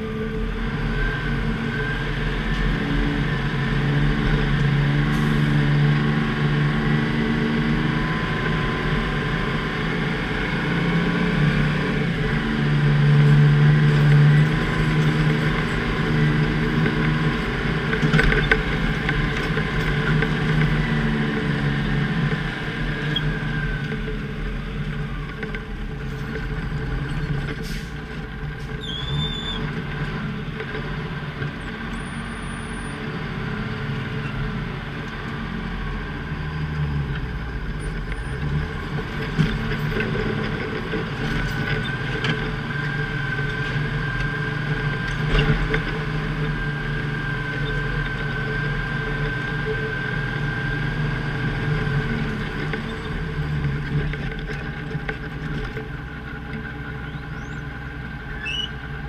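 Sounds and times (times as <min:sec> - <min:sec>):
diesel engine running under load: 0:00.0 - 0:59.0.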